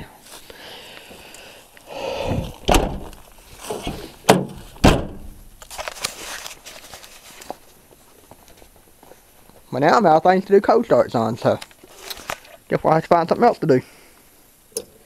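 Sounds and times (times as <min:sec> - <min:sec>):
car door thunks: 0:02.7 - 0:03.2, 0:03.8 - 0:05.5.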